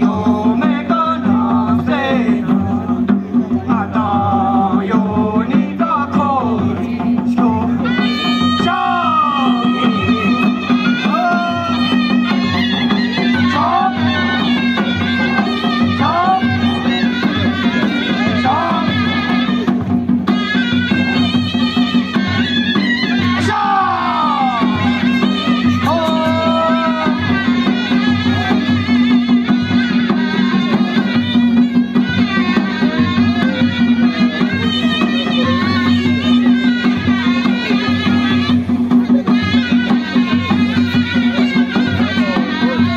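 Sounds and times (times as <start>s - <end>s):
drum strokes: 0.0s - 42.9s
shawm playing ornamented melody: 0.0s - 42.9s.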